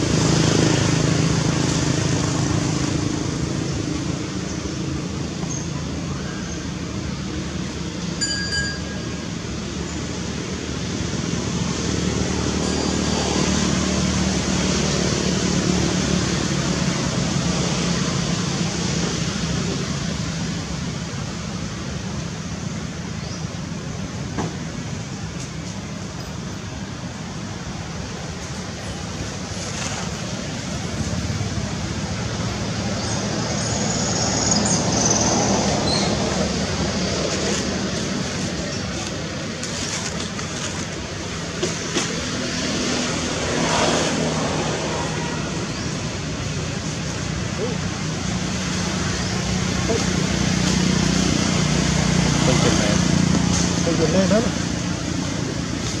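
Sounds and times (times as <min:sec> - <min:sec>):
distant traffic: 0:00.0 - 0:56.0.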